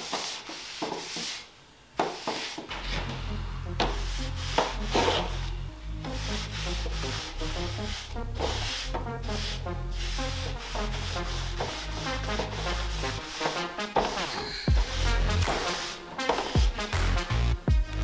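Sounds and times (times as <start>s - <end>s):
sponge rubbing on wooden board: 0.0s - 2.8s, 3.8s - 17.0s
music with deep bass line: 2.8s - 13.4s, 14.7s - 15.9s, 16.6s - 18.0s.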